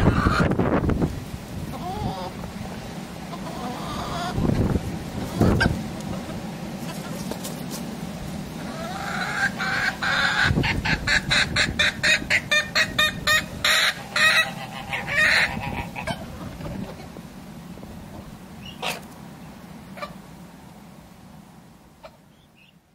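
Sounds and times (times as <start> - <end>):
chickens clucking: 0.0 - 20.4, 22.0 - 22.8.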